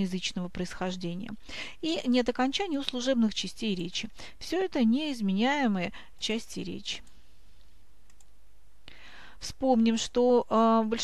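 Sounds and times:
low hum with faint hiss: 0:00.0 - 0:11.0
faint ticks: 0:08.1 - 0:08.4.

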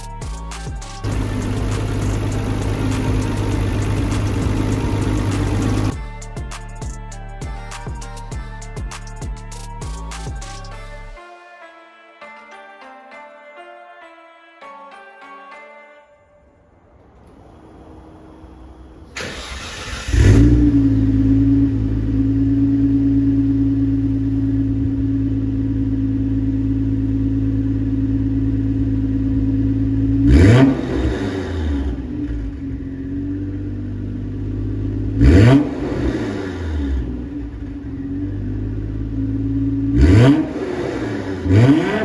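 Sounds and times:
car engine idling and revving: 0:00.0 - 0:11.1, 0:17.2 - 0:42.0
car engine starter cranking: 0:18.7 - 0:20.7.

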